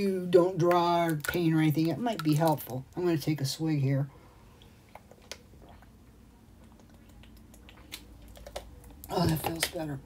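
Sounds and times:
person swallowing and gulping: 4.6s - 9.6s.

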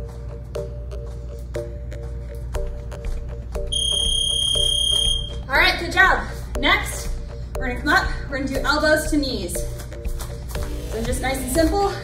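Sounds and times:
background music with beat: 0.0s - 5.5s, 6.2s - 12.0s
long high-pitched timer beep: 3.7s - 5.4s
woman speaking: 5.5s - 9.5s.

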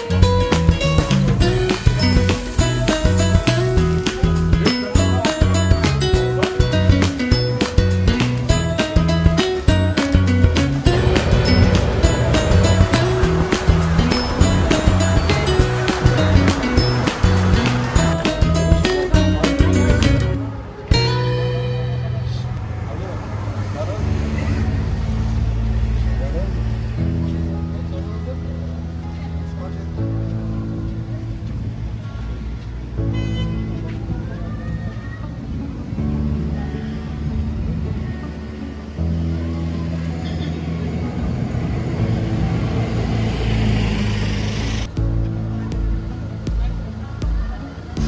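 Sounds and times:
background music low notes: 0.0s - 22.8s, 44.9s - 48.0s
road traffic: 0.0s - 48.0s
heavy vehicle engine running: 0.1s - 20.9s, 35.5s - 48.0s
indistinct voices: 10.3s - 25.4s.

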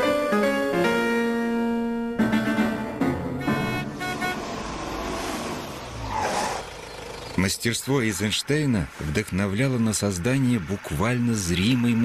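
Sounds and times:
piano music: 0.0s - 4.8s
old car engine rumble: 2.9s - 12.0s.

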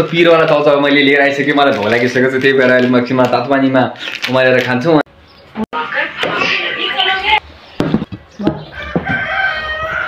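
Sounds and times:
rooster crowing: 8.6s - 10.0s.

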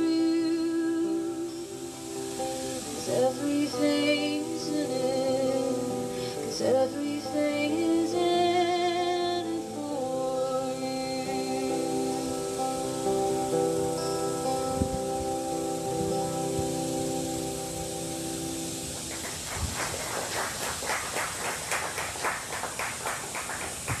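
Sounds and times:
acoustic guitar chords ringing: 0.0s - 19.2s
people clapping: 18.9s - 24.0s.

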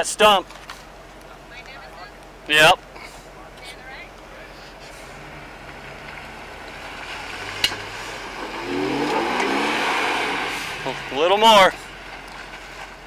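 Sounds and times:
engine revving: 4.6s - 12.7s.

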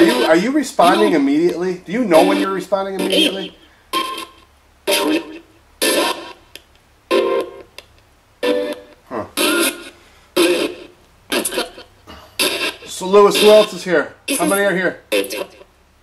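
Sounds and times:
radio fragments of music and voice: 0.0s - 6.5s, 8.4s - 15.7s.

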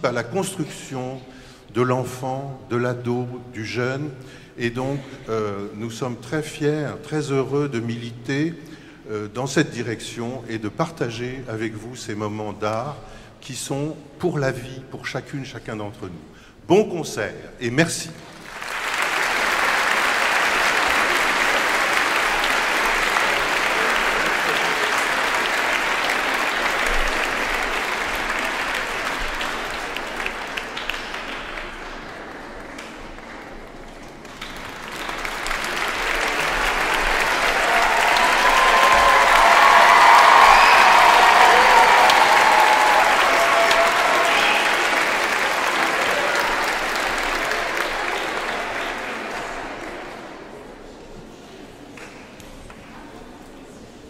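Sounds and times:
large audience applauding: 18.2s - 50.5s.

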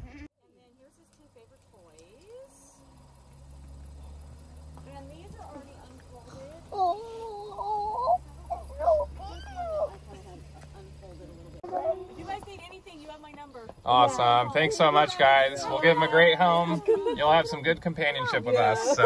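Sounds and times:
vehicle engine idling hum: 0.5s - 19.0s.

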